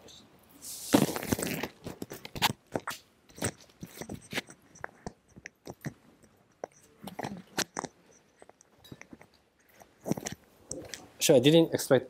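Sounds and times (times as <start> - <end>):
microphone handling rustle: 0.8 - 4.5.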